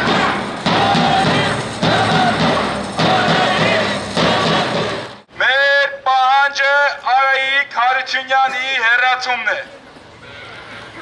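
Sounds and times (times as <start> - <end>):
low background noise: 0.0 - 11.0
man shouting through megaphone: 0.7 - 9.8.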